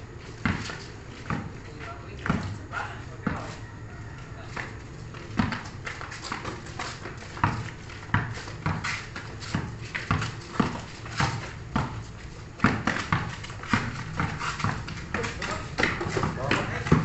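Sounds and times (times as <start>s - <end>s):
basketball bouncing on concrete: 0.2s - 2.6s, 3.2s - 3.6s, 4.2s - 17.0s.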